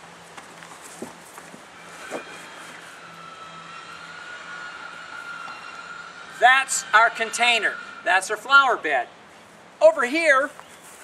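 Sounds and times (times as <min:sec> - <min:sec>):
faint steady drone: 0:00.0 - 0:09.9
faint outdoor background: 0:00.0 - 0:11.0.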